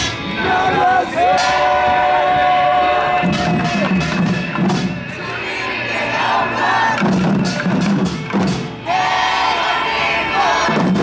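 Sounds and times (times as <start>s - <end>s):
crowd singing and shouting: 0.0s - 11.0s
loud worship music: 0.0s - 11.0s.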